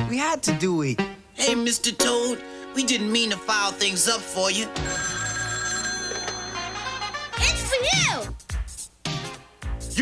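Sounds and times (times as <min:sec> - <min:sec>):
telephone bell ringing: 0:04.8 - 0:07.5.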